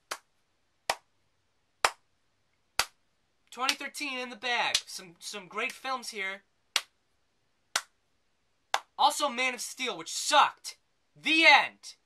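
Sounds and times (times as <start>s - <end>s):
man clapping hands: 0.0s - 0.3s, 0.9s - 1.1s, 1.8s - 2.0s, 3.6s - 3.9s, 4.7s - 4.9s, 7.8s - 8.0s, 8.7s - 9.0s.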